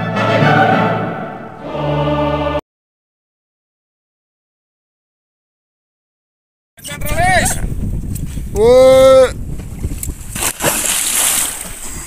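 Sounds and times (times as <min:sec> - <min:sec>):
churning water: 0:09.6 - 0:12.0
heavy splash into water: 0:10.3 - 0:12.0.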